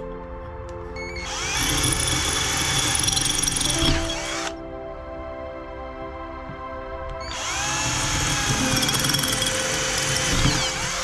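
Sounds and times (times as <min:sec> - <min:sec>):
soft background music: 0:00.0 - 0:11.0
cordless drill motor: 0:01.1 - 0:04.6, 0:07.2 - 0:11.0.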